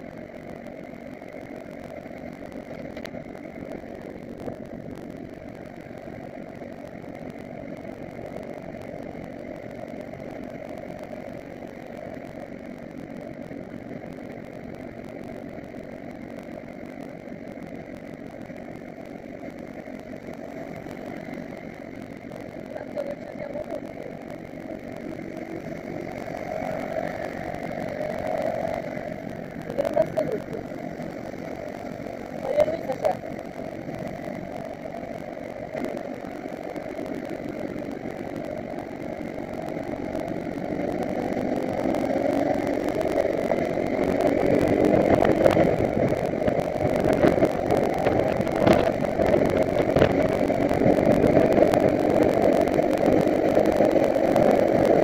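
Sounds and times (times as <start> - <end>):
motorcycle engine running: 0.0 - 55.0
road noise: 0.0 - 55.0
wind noise: 20.4 - 55.0.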